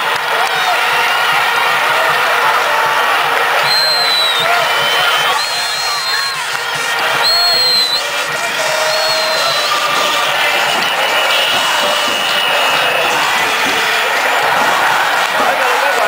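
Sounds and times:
crowd chanting and cheering: 0.0 - 16.0
high whistle: 3.6 - 14.0.

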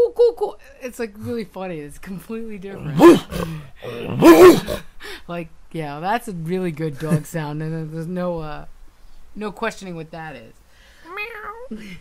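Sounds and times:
man imitating dog barks: 2.7 - 4.9.

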